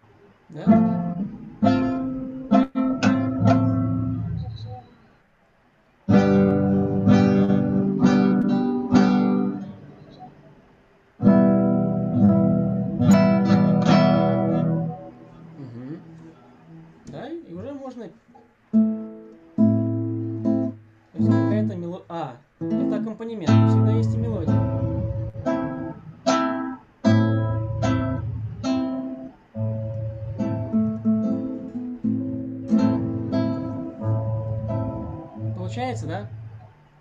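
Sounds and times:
acoustic guitar strumming: 0.0s - 4.9s, 6.1s - 21.8s, 22.6s - 37.0s.

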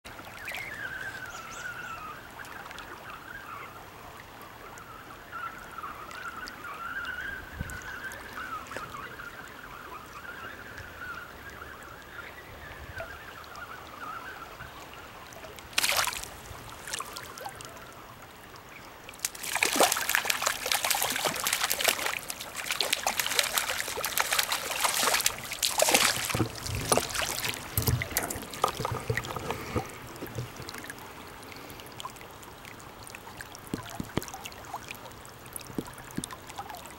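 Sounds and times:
river current rushing: 15.7s - 17.7s, 19.1s - 32.3s
fish splashing at the surface: 15.8s - 17.5s, 19.2s - 30.9s.

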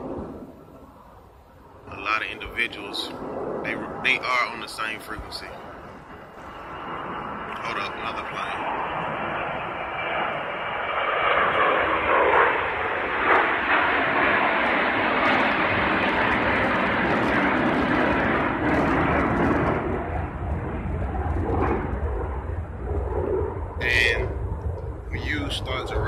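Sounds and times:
airplane flying overhead: 0.0s - 26.0s.

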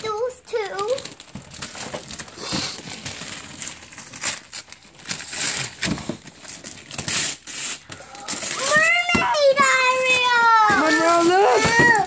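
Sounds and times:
wrapping paper tearing: 0.0s - 12.0s.

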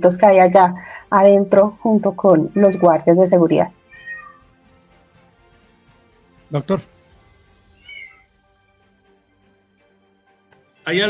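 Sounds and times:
high-pitched meow-like call: 2.5s - 3.0s, 3.9s - 4.4s, 7.8s - 8.2s.

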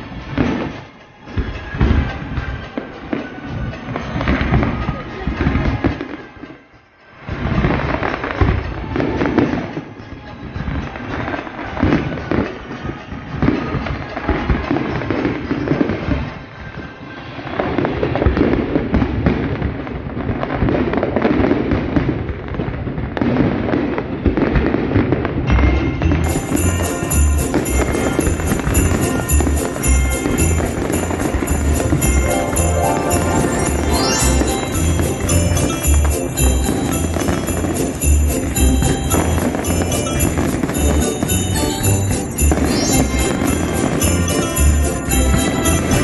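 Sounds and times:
fireworks bursting: 0.0s - 46.0s.

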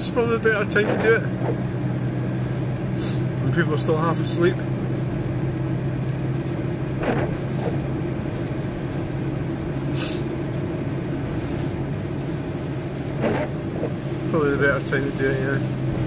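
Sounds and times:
vehicle engine and tyre hum: 0.0s - 16.0s
brief hiss: 3.0s - 3.2s, 9.9s - 10.3s.

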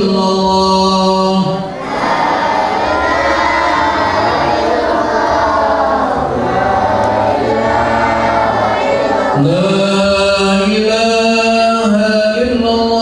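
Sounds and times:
children chanting in unison: 1.0s - 10.9s.

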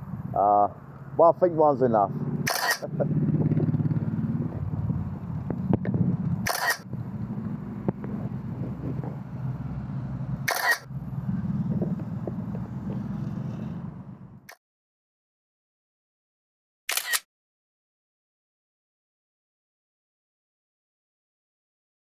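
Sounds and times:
steady low engine hum: 0.0s - 14.5s
camera shutter click: 2.5s - 2.9s, 6.4s - 6.8s, 10.5s - 10.8s, 16.9s - 17.3s.

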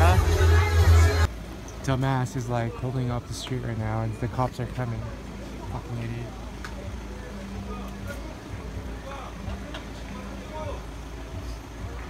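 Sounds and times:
crowd voices: 0.0s - 12.0s
idling car engines: 0.0s - 12.0s.

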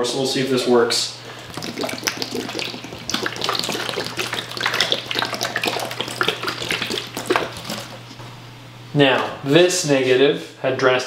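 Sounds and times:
liquid splashing in tray: 1.4s - 8.2s
liquid squirting from squeeze bottle: 1.4s - 8.2s.

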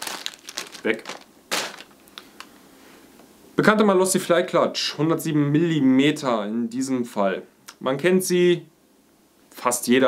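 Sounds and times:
plastic bag crinkling: 0.0s - 2.6s.

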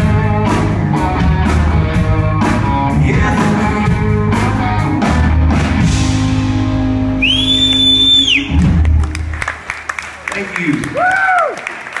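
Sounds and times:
live rock band playing: 0.0s - 9.6s
high whistle: 7.2s - 8.6s
audience cheering woo: 7.2s - 8.7s, 10.8s - 12.0s
audience clapping: 7.4s - 12.0s.

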